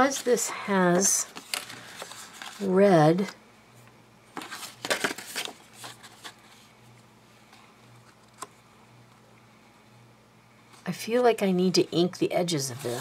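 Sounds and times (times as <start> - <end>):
paper rustling: 0.9 - 2.8, 4.4 - 6.7.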